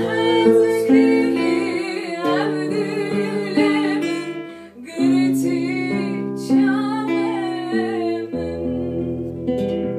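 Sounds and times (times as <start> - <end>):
woman singing: 0.0 - 9.1
acoustic guitar picked chords: 0.0 - 9.9.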